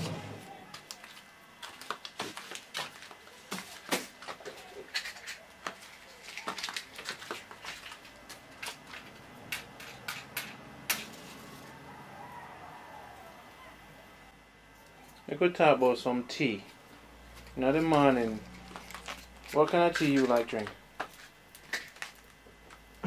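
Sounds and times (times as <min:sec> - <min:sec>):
clicks and crackles of paper handling: 0:00.7 - 0:11.1, 0:17.4 - 0:22.9.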